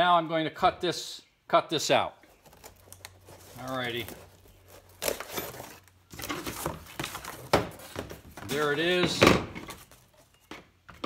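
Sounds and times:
cardboard rustling and scraping: 2.3 - 10.5.

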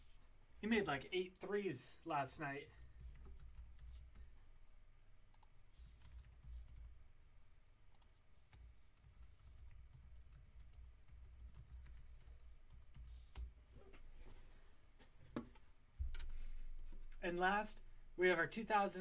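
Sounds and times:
low room hum: 0.0 - 19.0
typing on computer keyboard: 2.7 - 4.2, 5.3 - 7.0, 7.9 - 13.5.

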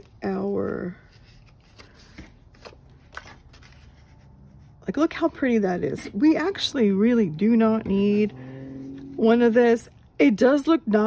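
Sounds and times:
paper sheets rustling: 0.0 - 5.3.

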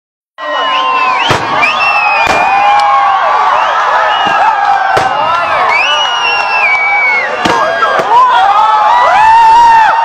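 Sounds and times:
crowd cheering and shouting: 0.4 - 10.0
firework bang: 1.2 - 2.7, 4.2 - 5.5
firework crack: 1.2 - 3.0.

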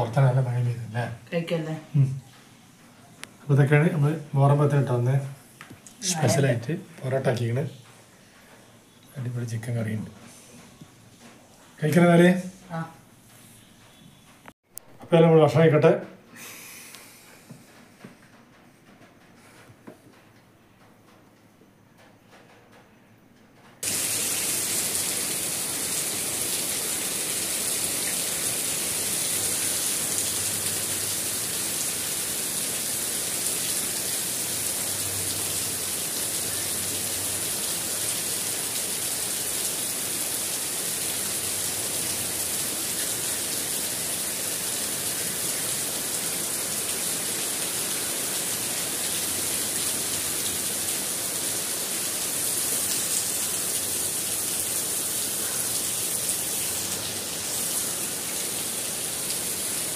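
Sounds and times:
rain falling on foliage: 6.0 - 10.2, 23.8 - 59.9.

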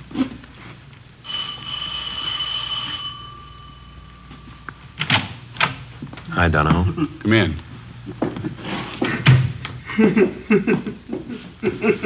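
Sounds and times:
doorbell ringing: 1.2 - 5.5.

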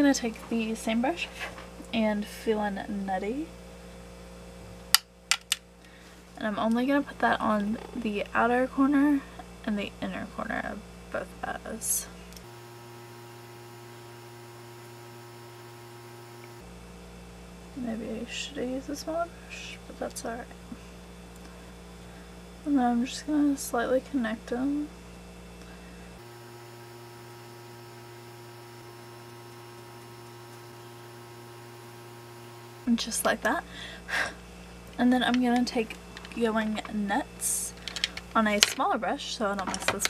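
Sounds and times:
electrical hum: 0.0 - 40.0
faint steady tones: 12.4 - 16.6, 26.2 - 33.2.

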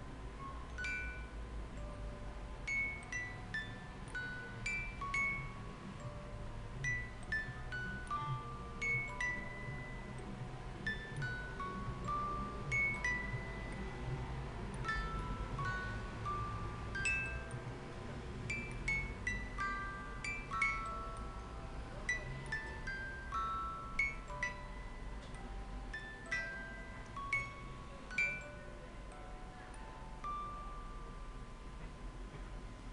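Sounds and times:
faint low mechanism rumble: 0.0 - 32.9
music box melody: 0.0 - 32.9.

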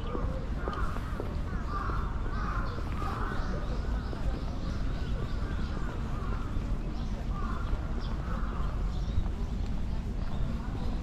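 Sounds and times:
crow cawing: 1.6 - 3.2.

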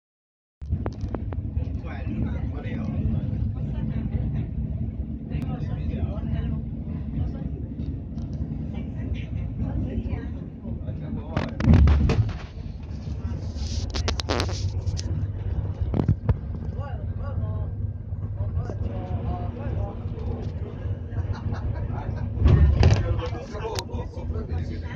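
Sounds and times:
bus engine and tyre drone: 0.6 - 24.9
loud thump: 11.4 - 12.6.

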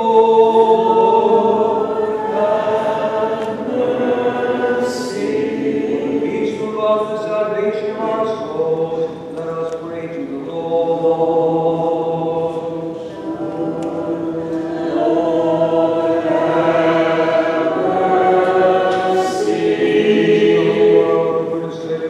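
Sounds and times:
choir singing a slow chant: 0.0 - 22.0.

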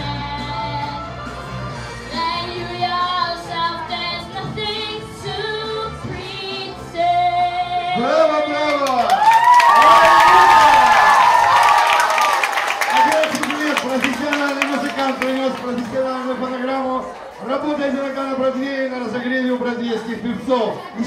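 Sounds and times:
child singing over backing track: 0.0 - 8.0
audience applause and cheering: 8.6 - 18.4.

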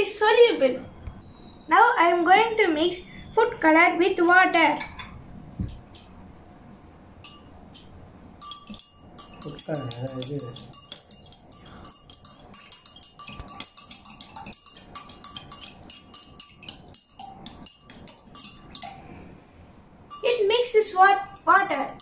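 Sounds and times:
metal spoon clinking against glass: 7.2 - 19.1, 20.1 - 20.4, 21.2 - 22.0.

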